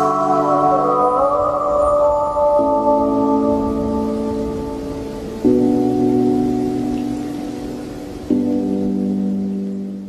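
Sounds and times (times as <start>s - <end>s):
reverb-heavy lofi chords: 0.0s - 9.7s
soft steady hiss: 0.0s - 10.0s.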